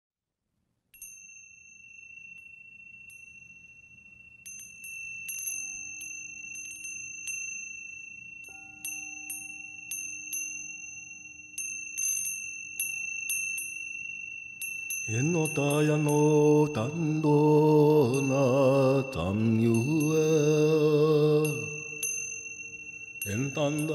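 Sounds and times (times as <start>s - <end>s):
high held tones: 1.0s - 23.9s
low held tone: 1.0s - 23.9s
wind chimes tinkling: 1.0s - 23.9s.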